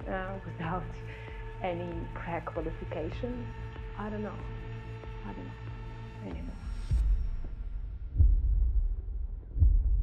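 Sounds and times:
deep bass heartbeat thuds: 6.6s - 10.0s.

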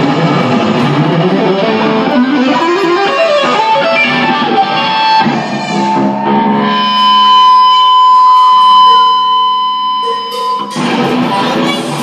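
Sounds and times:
distorted electric guitar: 0.0s - 12.0s.

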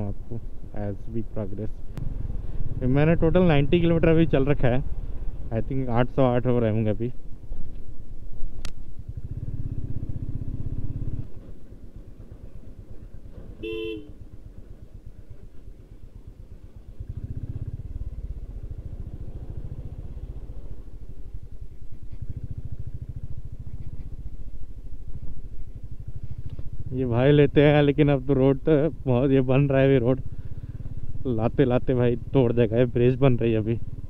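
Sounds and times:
motorcycle engine running: 1.4s - 34.0s
motorcycle horn toot: 13.6s - 14.2s.

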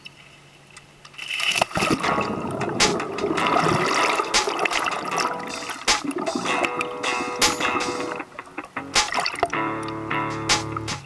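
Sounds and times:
sharp clicks underwater: 0.8s - 11.0s
underwater bubbling water: 1.7s - 8.5s.

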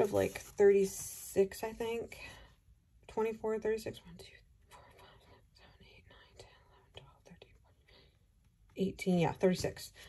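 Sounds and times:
woman whispering: 3.1s - 8.1s.

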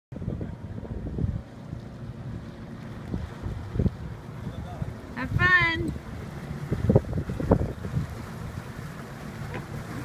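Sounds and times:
low boat engine rumble: 0.1s - 10.0s
wind buffeting microphone: 0.1s - 10.0s.

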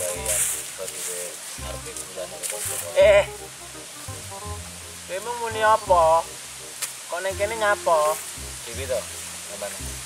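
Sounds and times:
person speaking or singing: 0.0s - 3.5s, 5.1s - 6.3s, 7.1s - 9.8s
background music sustained notes: 0.0s - 10.0s.

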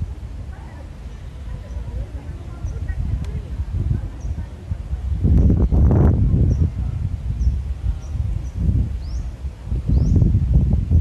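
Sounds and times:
wind gusting on microphone: 0.0s - 11.0s
bird chirping: 7.4s - 10.3s.

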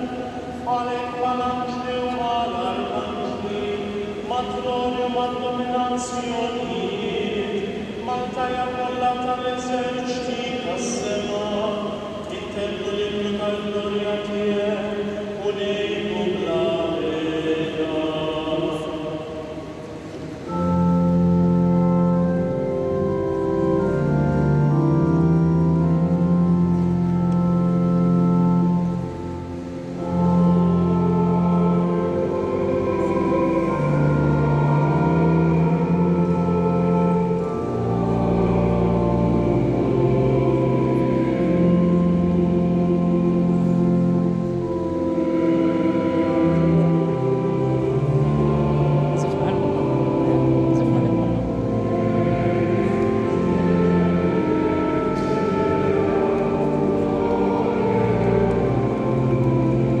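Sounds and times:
church organ playing hymn: 0.0s - 60.0s.

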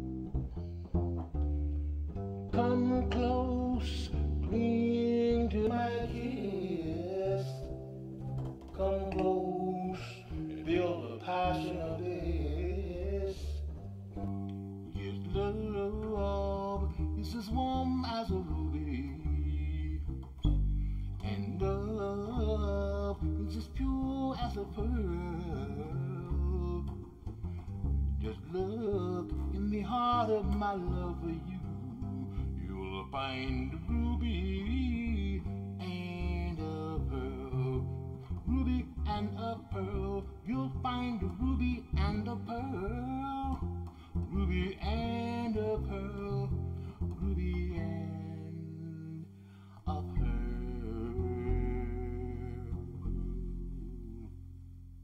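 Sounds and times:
double bass plucked: 0.0s - 55.0s
person singing wordless line: 2.5s - 20.3s, 21.2s - 54.4s.

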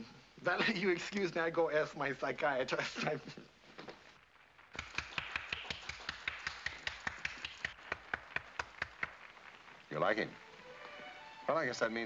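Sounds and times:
people clapping: 4.7s - 11.5s.

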